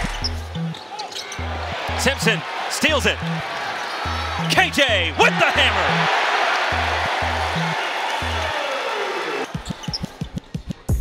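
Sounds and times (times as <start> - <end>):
music with pulsing bass line: 6.7 - 8.5.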